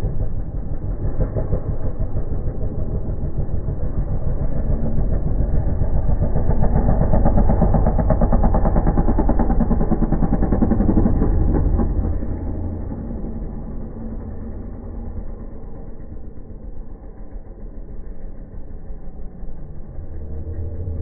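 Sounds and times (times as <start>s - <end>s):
motocross bike engine revving: 0.1s - 21.0s.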